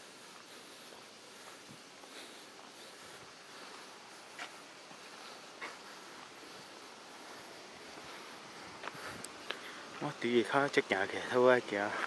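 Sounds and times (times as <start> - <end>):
faint outdoor background hiss: 0.0 - 12.0
soft ticks: 8.8 - 9.6.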